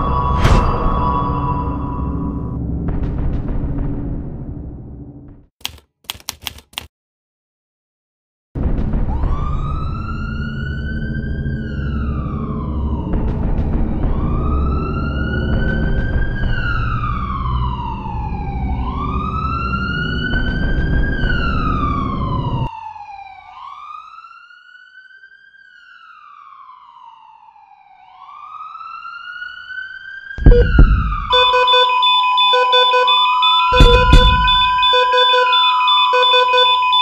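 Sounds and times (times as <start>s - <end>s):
siren wailing: 0.0s - 2.6s, 9.1s - 37.0s
loud low rumble: 30.4s - 31.5s.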